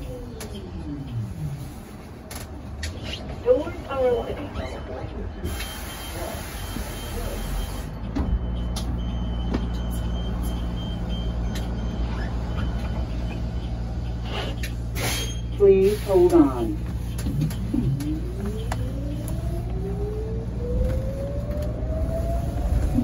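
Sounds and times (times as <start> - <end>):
bus cabin noise: 0.0 - 23.0
bus drivetrain humming: 0.0 - 23.0.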